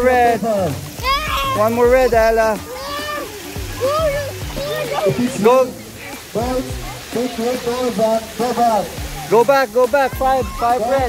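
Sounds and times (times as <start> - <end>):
water splashing in a pool: 0.0 - 11.0
people calling out: 0.9 - 8.0.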